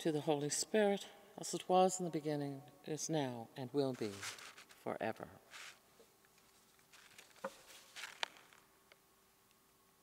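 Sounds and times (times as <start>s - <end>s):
faint steady hum: 0.0s - 10.0s
soft clicks and rustles: 3.9s - 4.9s, 5.5s - 9.6s.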